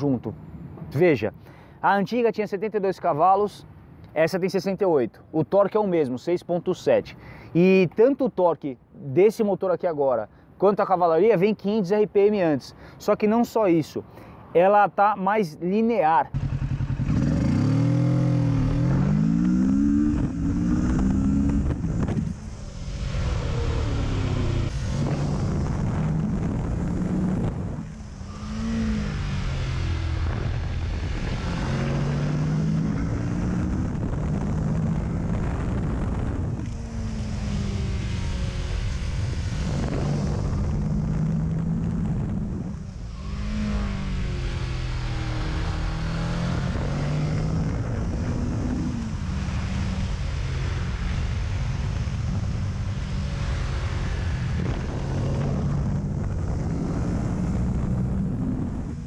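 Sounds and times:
motorcycle engine revving: 16.4s - 59.0s.

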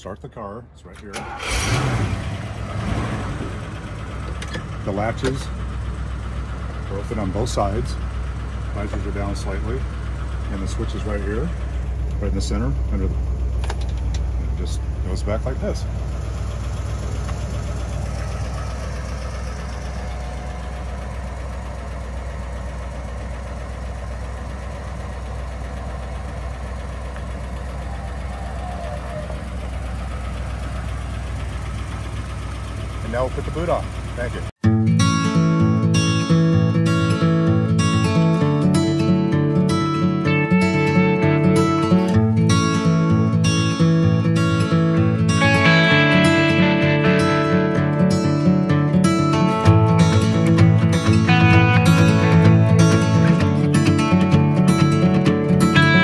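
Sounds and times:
car engine low rumble: 0.0s - 56.0s.

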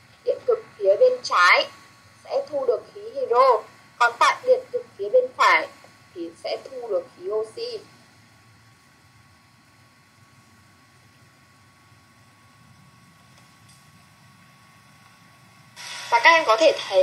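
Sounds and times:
thin constant tone: 0.0s - 17.0s
light hiss: 5.4s - 17.0s.

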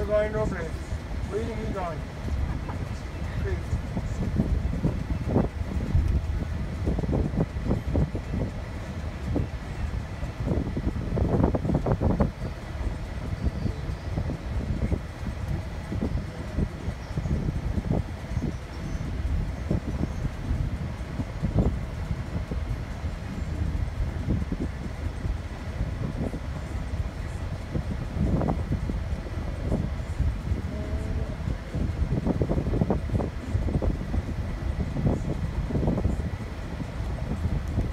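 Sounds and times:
car cabin road rumble: 0.0s - 37.9s.

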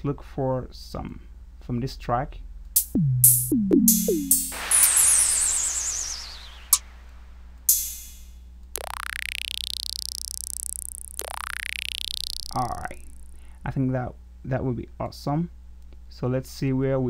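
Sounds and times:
electronic tom hit: 2.8s - 6.8s, 7.7s - 8.2s
electronic vibra-slap: 2.8s - 6.9s, 7.7s - 12.9s
cymbal crash: 3.9s - 7.0s, 7.7s - 8.2s
hissing effect with falling whistle: 4.1s - 8.2s.

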